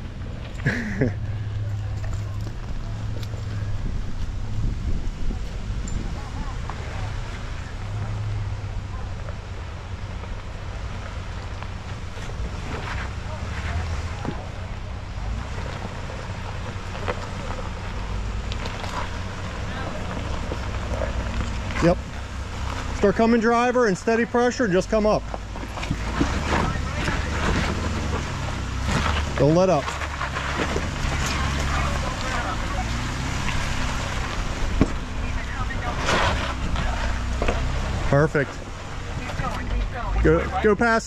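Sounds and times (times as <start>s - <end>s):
car engine running low: 0.0s - 41.0s
wind on microphone: 3.5s - 6.7s.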